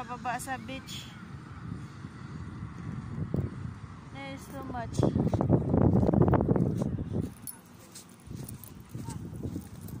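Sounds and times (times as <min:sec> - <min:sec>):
footsteps on pavement: 0:05.1 - 0:10.0.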